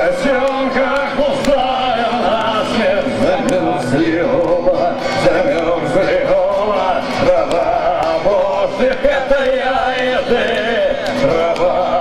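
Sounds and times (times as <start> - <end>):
man singing: 0.0 - 12.0
strummed electric guitar: 0.0 - 12.0.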